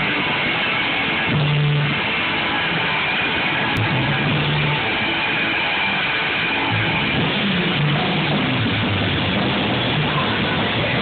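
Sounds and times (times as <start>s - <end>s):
held bass notes: 0.0s - 11.0s
punk rock band playing: 0.0s - 11.0s.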